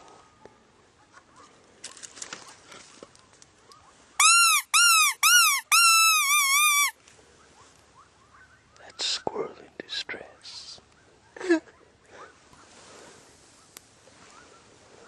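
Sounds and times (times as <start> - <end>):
predator call squealing: 4.2 - 6.9.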